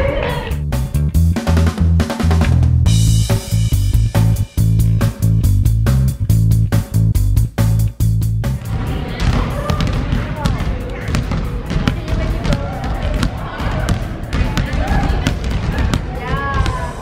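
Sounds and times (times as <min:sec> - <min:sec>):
children calling out: 0:00.0 - 0:00.6, 0:14.5 - 0:17.0
basketballs bouncing on wooden floor: 0:08.6 - 0:17.0.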